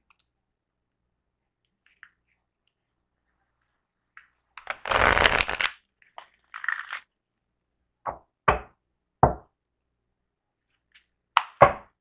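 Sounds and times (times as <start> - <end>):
cards being shuffled: 4.6 - 7.1.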